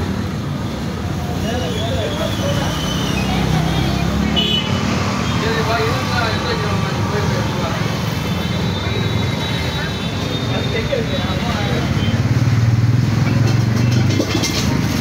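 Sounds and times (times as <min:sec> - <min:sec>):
passing traffic rumble: 0:00.0 - 0:15.0
people talking indistinctly: 0:01.0 - 0:12.6.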